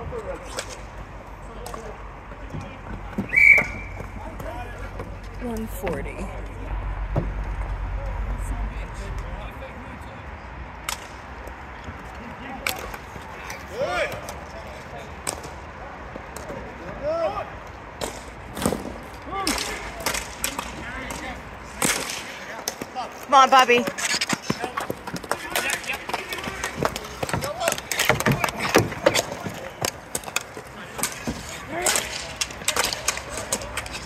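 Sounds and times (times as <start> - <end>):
hockey sticks clacking: 0.3 - 6.4, 10.8 - 17.0, 18.0 - 34.0
players shouting: 12.6 - 14.8.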